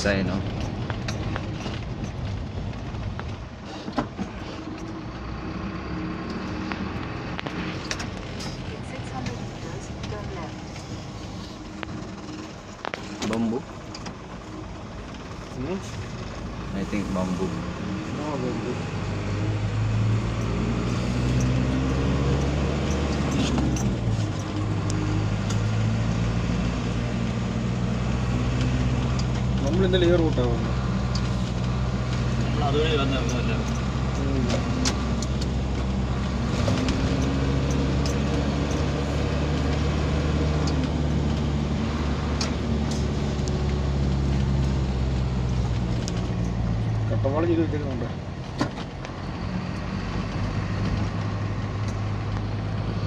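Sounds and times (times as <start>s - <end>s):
car engine and road noise: 0.0s - 53.0s.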